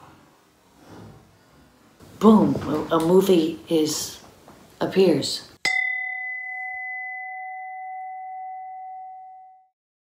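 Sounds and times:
bell ringing: 0:05.7 - 0:09.7.

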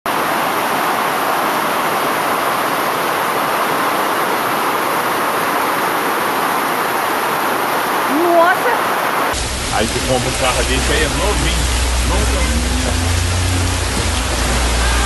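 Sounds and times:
floodwater rushing down street: 0:00.1 - 0:15.0.

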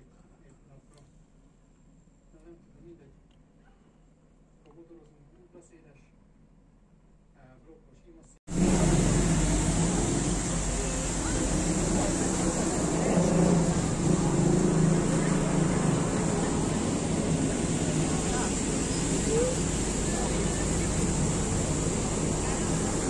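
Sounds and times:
traffic rumble: 0:08.5 - 0:23.0
voices of passers-by: 0:08.6 - 0:23.0.

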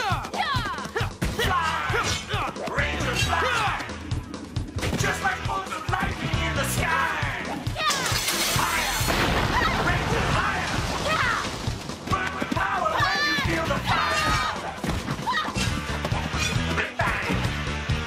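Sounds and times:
people shouting: 0:00.0 - 0:04.1, 0:05.0 - 0:11.5, 0:12.1 - 0:17.4
action soundtrack music: 0:00.0 - 0:18.0.

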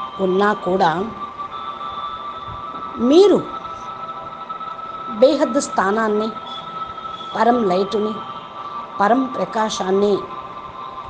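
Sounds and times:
faint high-pitched tone: 0:00.0 - 0:11.0.

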